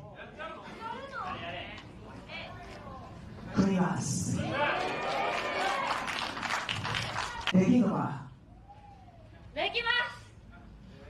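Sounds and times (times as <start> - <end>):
voices echoing in a hall: 0.0 - 6.1
speech over a microphone: 3.5 - 4.6, 7.5 - 8.4.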